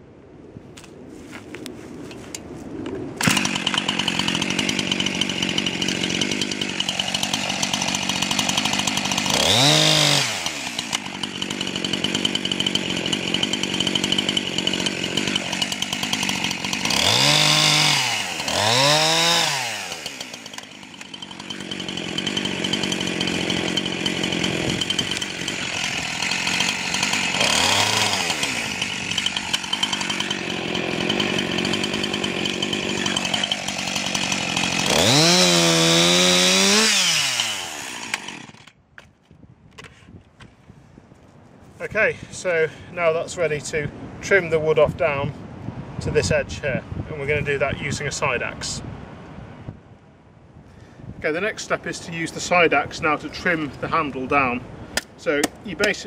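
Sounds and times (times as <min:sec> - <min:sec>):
chainsaw cutting log: 0:03.2 - 0:39.1, 0:52.3 - 0:56.0.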